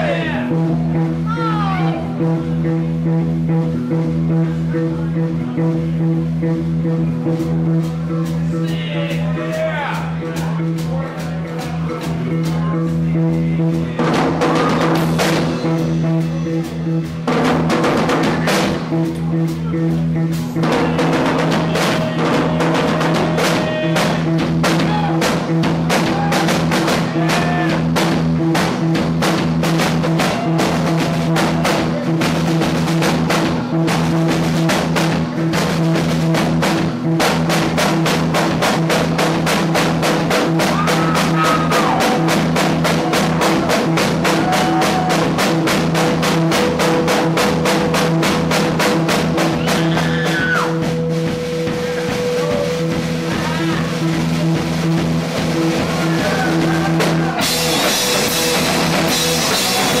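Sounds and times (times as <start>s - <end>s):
drums and cymbals beat: 0.0s - 60.0s
rock band playing: 0.0s - 60.0s.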